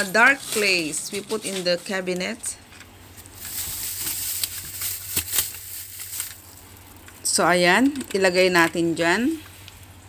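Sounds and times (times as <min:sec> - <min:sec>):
foil crinkling and rustling: 0:00.0 - 0:02.4, 0:03.1 - 0:07.1.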